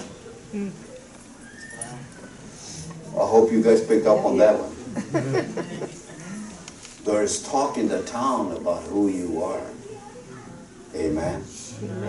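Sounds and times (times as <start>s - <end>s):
faint murmured voices: 8.7s - 12.0s.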